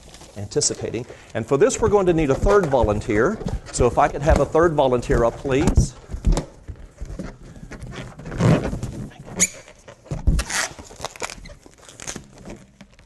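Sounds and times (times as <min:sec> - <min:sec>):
balloons rubbing and rustling: 0:00.0 - 0:13.0
rubbery balloon squeak: 0:01.7 - 0:04.7, 0:05.4 - 0:12.7.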